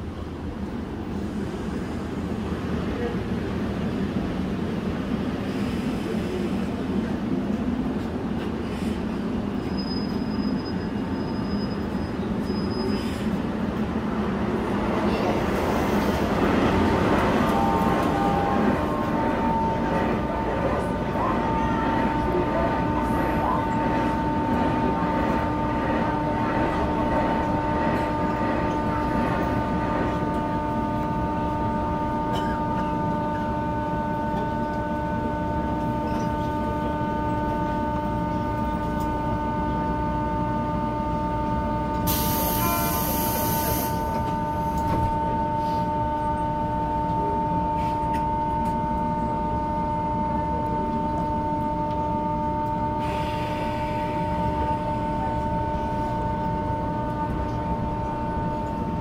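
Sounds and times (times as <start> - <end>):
standing train whine: 0.0 - 59.0
thin high brake squeal: 9.6 - 13.3
electric train braking: 14.6 - 59.0.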